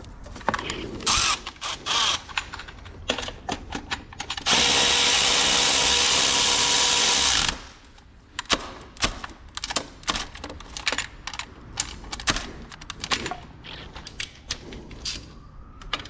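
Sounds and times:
electric ratchet running: 0:04.5 - 0:07.6.

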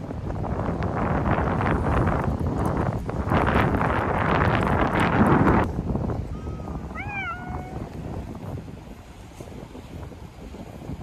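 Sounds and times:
cat meowing: 0:06.9 - 0:07.8.

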